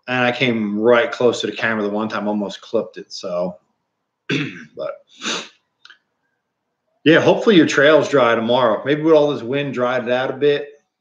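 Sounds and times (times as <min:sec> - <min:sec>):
man clearing his throat: 0:04.3 - 0:05.5.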